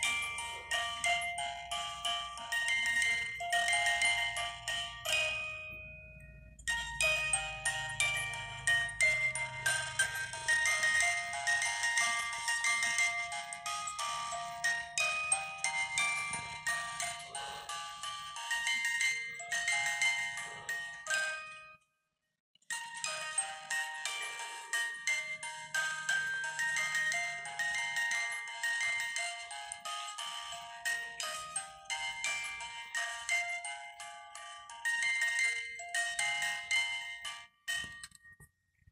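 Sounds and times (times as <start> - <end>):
music box tinkling tune: 0.0 - 21.8, 22.6 - 38.6.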